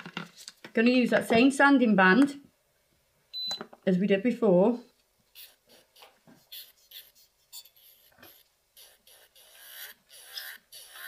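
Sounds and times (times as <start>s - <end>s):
electric nail file scraping nail: 5.4s - 11.0s.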